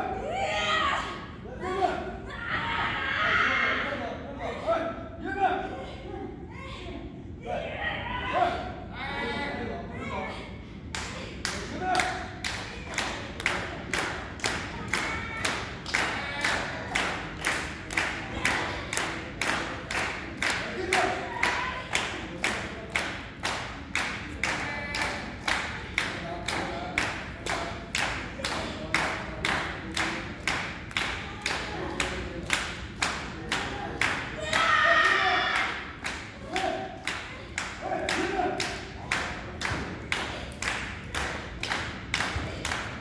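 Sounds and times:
audience clapping in unison: 0:11.0 - 0:34.6, 0:35.6 - 0:43.0.

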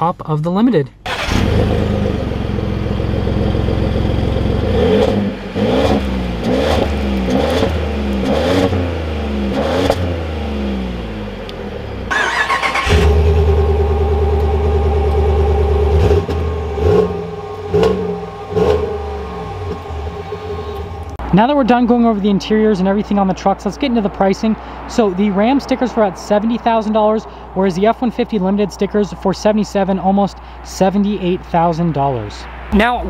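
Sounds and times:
truck engine revving: 0:01.1 - 0:29.8
truck engine idling and revving: 0:01.1 - 0:33.0.

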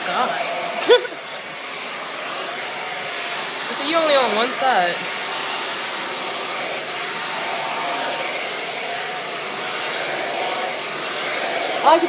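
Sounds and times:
blow dryer running: 0:00.0 - 0:12.0.

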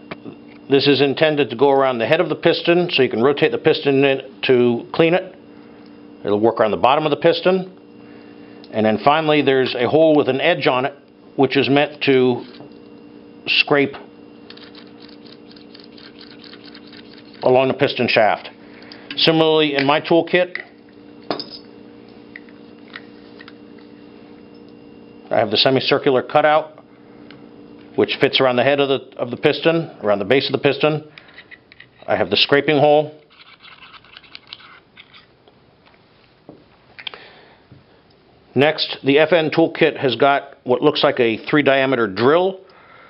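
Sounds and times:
steady low hum: 0:00.0 - 0:43.0
small metal clicks and scrapes: 0:33.2 - 0:35.3.

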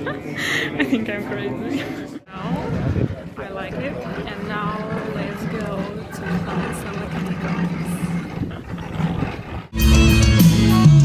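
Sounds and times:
crowd voices: 0:00.0 - 0:09.2
live metal music: 0:09.7 - 0:11.0.

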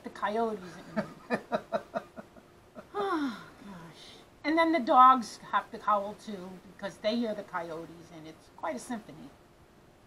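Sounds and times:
person laughing: 0:00.7 - 0:03.4.

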